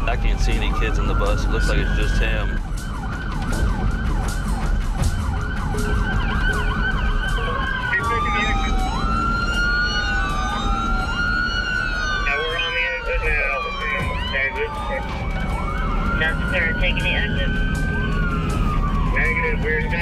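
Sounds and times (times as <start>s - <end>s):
car engine and road noise: 0.0s - 20.0s
police siren yelp: 0.0s - 20.0s
police sirens wailing: 0.0s - 20.0s.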